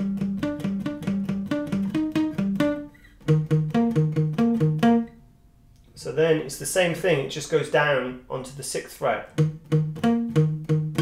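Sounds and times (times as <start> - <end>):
palm-muted acoustic guitar riff: 0.0 - 5.2, 9.2 - 11.0.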